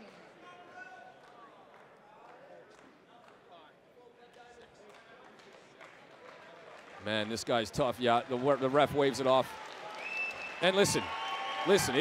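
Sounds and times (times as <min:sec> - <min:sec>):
murmur of small crowd: 0:00.0 - 0:06.8.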